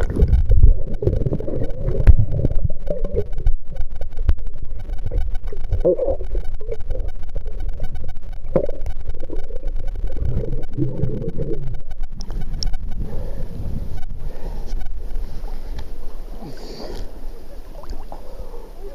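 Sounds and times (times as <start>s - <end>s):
muffled underwater rumble: 0.0s - 18.9s.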